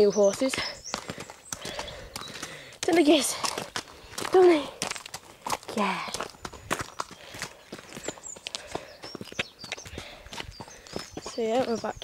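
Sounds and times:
footsteps on dirt track: 0:00.0 - 0:12.0
pony hooves on dirt: 0:00.0 - 0:12.0.

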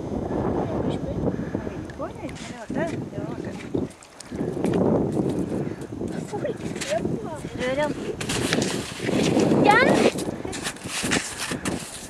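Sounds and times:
wind noise on microphone: 0:00.0 - 0:12.0.

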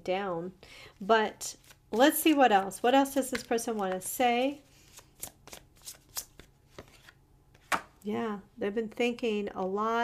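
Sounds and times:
cards shuffling: 0:01.6 - 0:08.0.

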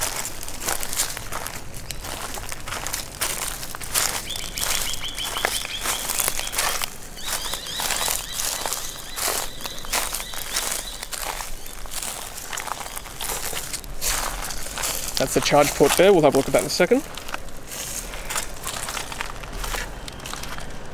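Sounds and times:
footsteps crunching on gravel: 0:00.0 - 0:20.9.

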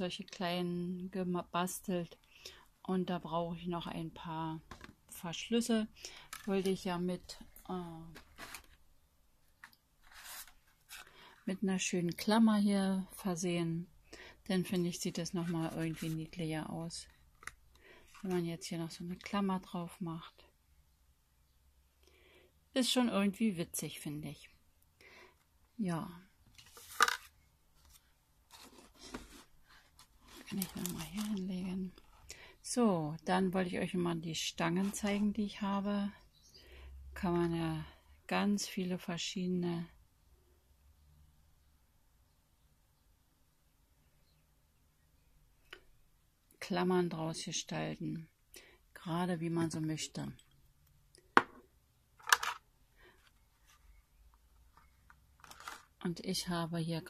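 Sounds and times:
card rustling and scraping: 0:08.1 - 0:08.8, 0:09.6 - 0:11.2, 0:15.5 - 0:16.4, 0:26.6 - 0:31.4, 0:54.6 - 0:55.9.

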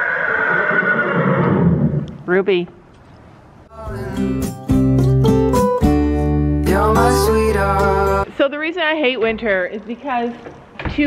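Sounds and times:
horse whinnying: 0:00.0 - 0:02.1.

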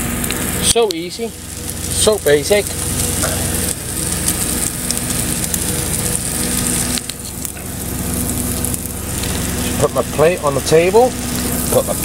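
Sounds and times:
low hum: 0:00.0 - 0:12.0
omelette sizzling in a pan: 0:00.0 - 0:12.0.

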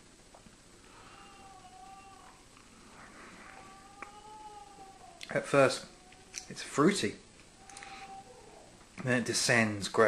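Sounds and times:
cat meowing faintly: 0:00.9 - 0:02.4, 0:03.0 - 0:06.6, 0:07.6 - 0:08.8.

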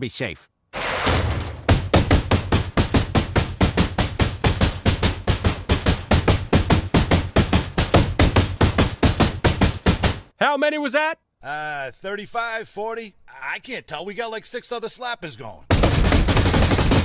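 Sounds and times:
roll-up truck door rolling shut: 0:00.8 - 0:02.0.

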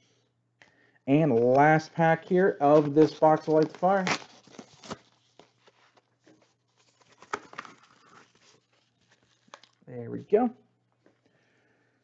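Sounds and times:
wrapper being torn and crinkled: 0:02.7 - 0:06.0.

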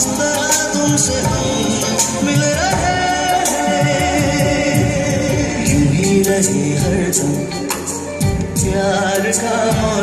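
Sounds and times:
man singing with band: 0:00.0 - 0:10.0.

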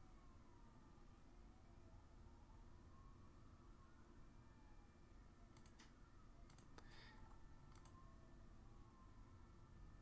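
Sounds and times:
faint computer mouse clicks: 0:05.5 - 0:07.0, 0:07.7 - 0:08.0.

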